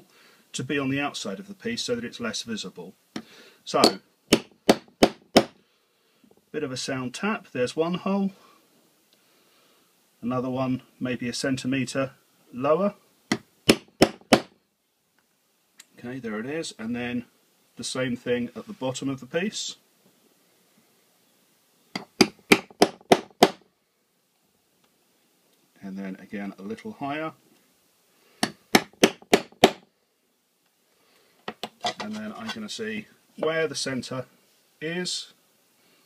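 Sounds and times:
hammer tapping metal hole punch: 3.8s - 5.5s, 13.3s - 14.5s, 22.0s - 23.6s, 28.4s - 29.8s
hammer striking steel punch: 28.4s - 29.8s.

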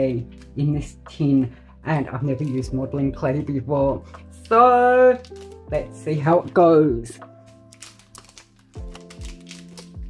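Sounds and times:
background music: 0.0s - 10.0s
foil wrapper crinkling and tearing: 4.1s - 5.7s, 7.4s - 10.0s.

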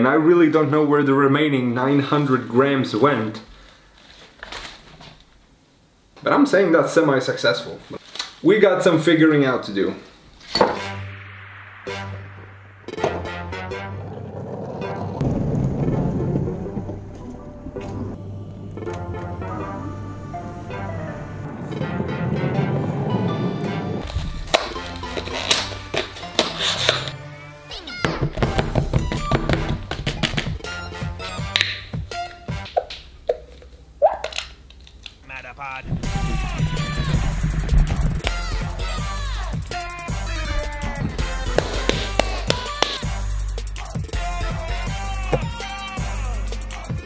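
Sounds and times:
background music: 10.5s - 34.2s, 35.8s - 47.0s.

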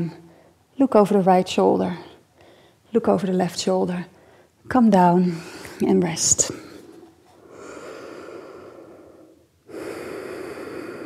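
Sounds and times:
woman breathing deeply: 2.4s - 2.9s, 6.6s - 11.0s.

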